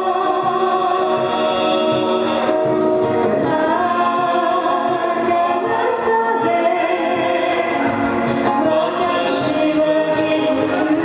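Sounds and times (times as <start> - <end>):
acoustic guitars: 0.0 - 11.0
person singing: 0.0 - 11.0.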